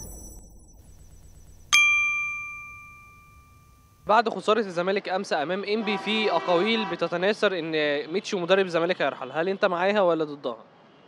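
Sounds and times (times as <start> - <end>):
bright metallic chime: 0.0 - 0.8, 1.7 - 4.0.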